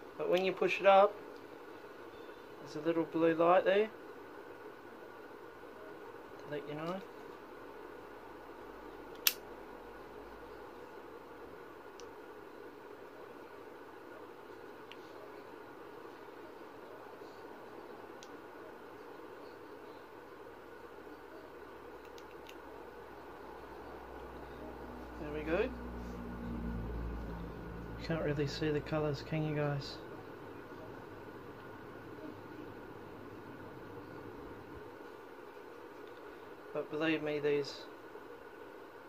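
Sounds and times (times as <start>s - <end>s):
low room hum: 0.0s - 39.0s.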